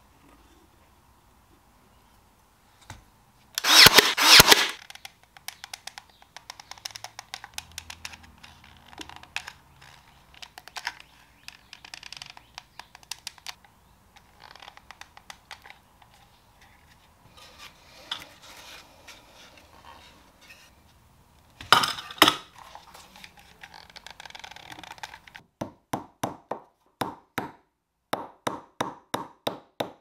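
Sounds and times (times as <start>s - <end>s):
sharp bangs: 3.6s - 4.8s.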